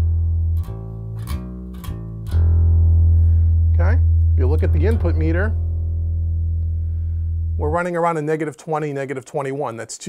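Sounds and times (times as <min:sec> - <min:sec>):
electric bass guitar notes: 0:00.0 - 0:08.5.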